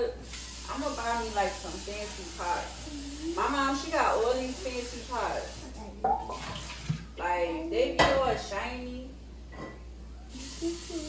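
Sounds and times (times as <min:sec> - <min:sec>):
food sizzling in a pan: 0:00.0 - 0:06.5, 0:10.3 - 0:11.0
voices: 0:00.7 - 0:06.2.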